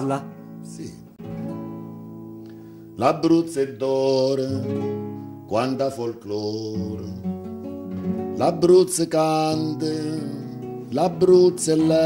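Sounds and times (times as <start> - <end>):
acoustic guitar chord strummed: 0.0 - 12.0.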